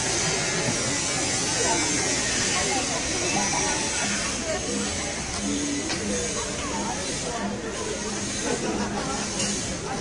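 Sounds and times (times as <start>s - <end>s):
faint voices: 0.0s - 10.0s
loud steady hiss: 0.0s - 10.0s.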